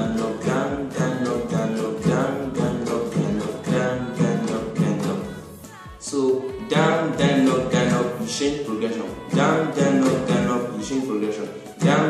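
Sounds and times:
acoustic guitar strumming: 0.0s - 12.0s
person singing: 0.0s - 12.0s.

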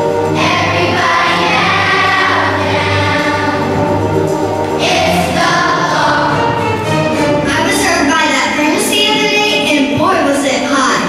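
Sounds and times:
children's choir singing: 0.0s - 9.7s
musical accompaniment: 0.0s - 11.0s.

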